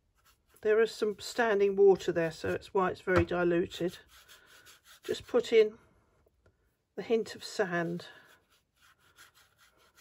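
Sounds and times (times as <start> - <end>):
paintbrush rubbing on paper: 0.0 - 2.6, 3.6 - 5.6, 7.4 - 10.0.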